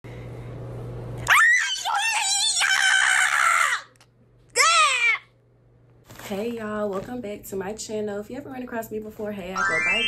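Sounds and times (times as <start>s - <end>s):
low steady hum: 0.1s - 10.0s
woman screaming: 1.2s - 4.0s, 4.6s - 5.3s.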